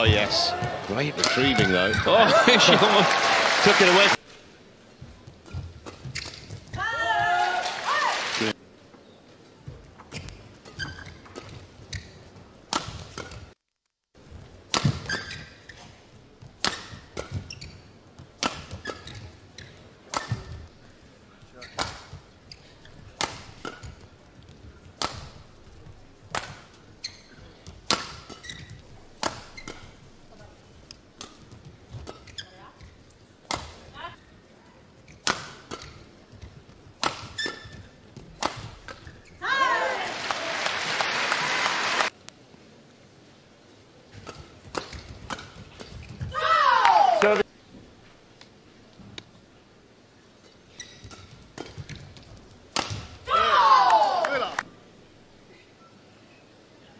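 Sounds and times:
court shoes squeaking: 5.0s - 6.9s, 8.9s - 13.6s, 14.3s - 39.6s, 44.1s - 46.4s, 50.4s - 53.3s
rackets hitting shuttlecock: 14.7s - 15.4s, 16.6s - 17.6s, 18.4s - 19.3s, 21.6s - 22.2s, 23.2s - 24.1s, 24.9s - 30.0s, 33.5s - 33.9s, 37.0s - 39.1s, 44.2s - 47.0s, 52.7s - 54.5s.

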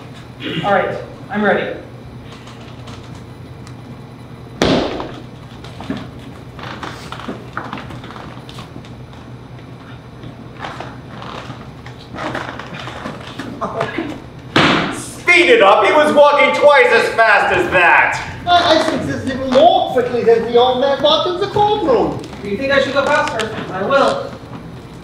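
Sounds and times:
foot stamp on stage floor: 4.6s - 8.6s.

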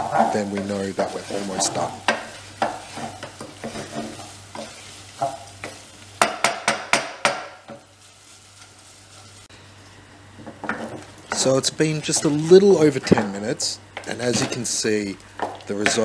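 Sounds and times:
wooden spoon scraping metal pot: 0.0s - 5.8s
rice simmering: 0.0s - 16.0s.

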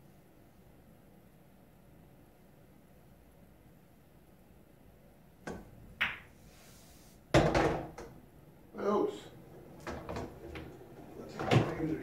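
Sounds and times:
pool balls clicking: 9.3s - 12.0s.

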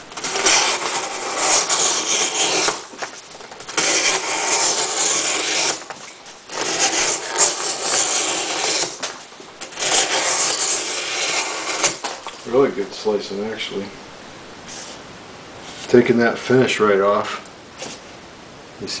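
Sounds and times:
knife slicing cardboard: 0.1s - 12.4s.

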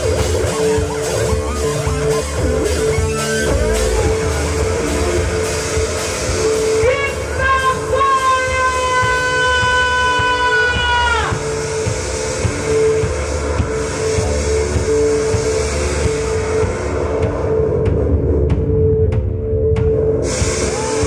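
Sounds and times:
pulsing repeated note: 0.0s - 16.7s
low pulsing drum beat: 0.0s - 21.0s.

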